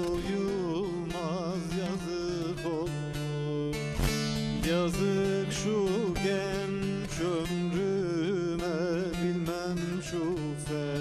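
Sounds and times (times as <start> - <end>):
long-necked lute plucked and strummed: 0.0 - 11.0
man singing folk song: 0.0 - 11.0.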